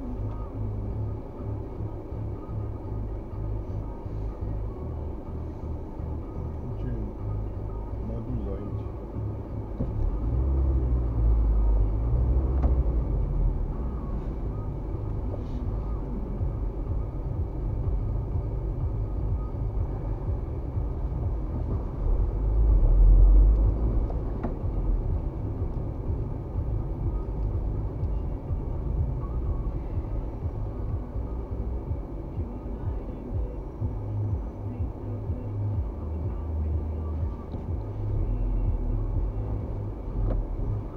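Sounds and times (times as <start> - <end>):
car road and engine rumble: 0.0 - 40.9.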